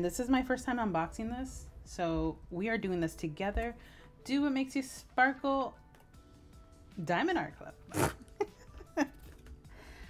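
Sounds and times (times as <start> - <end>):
woman laughing: 7.9 - 9.4.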